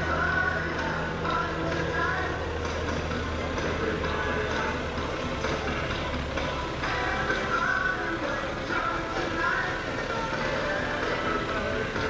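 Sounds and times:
music with singing over loudspeakers: 0:00.0 - 0:12.0
small plane engine drone: 0:00.0 - 0:12.0.

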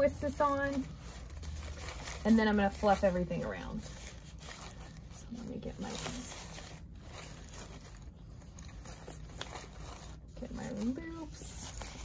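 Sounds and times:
low room hum: 0:00.0 - 0:12.0
ribbon and greenery rustling: 0:00.0 - 0:12.0.

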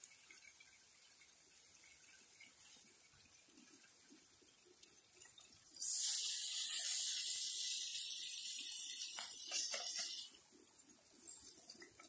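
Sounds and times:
bacon sizzling in fat: 0:05.6 - 0:10.4.

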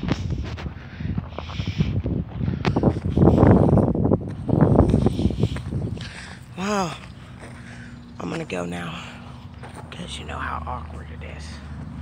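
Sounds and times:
footsteps on gravel road: 0:00.0 - 0:12.0
wind buffeting microphone: 0:00.0 - 0:12.0.

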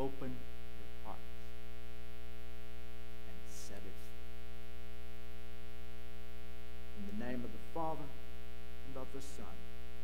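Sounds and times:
steady electrical hum: 0:00.0 - 0:10.0
soft spoken syllables: 0:01.0 - 0:01.4, 0:03.2 - 0:04.2, 0:06.9 - 0:08.2, 0:08.8 - 0:09.7.

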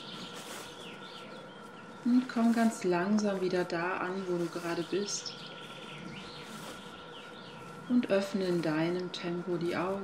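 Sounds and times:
background hiss: 0:00.0 - 0:10.0
faint bird chirps: 0:00.0 - 0:10.0.

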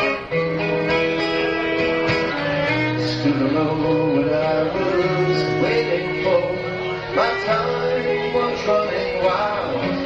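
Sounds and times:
guitar chords: 0:00.0 - 0:10.0.

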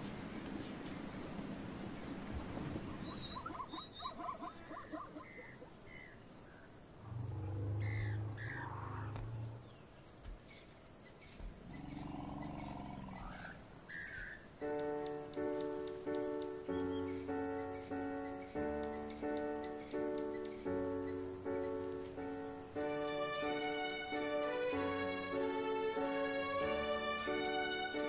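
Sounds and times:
birds chirping: 0:00.0 - 0:28.0
deep animal calls: 0:07.0 - 0:09.8, 0:11.6 - 0:14.4.

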